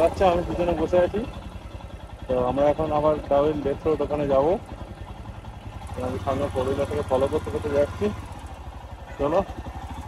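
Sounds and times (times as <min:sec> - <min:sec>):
motorcycle engine idling: 0:00.0 - 0:10.0
voices talking: 0:00.0 - 0:10.0.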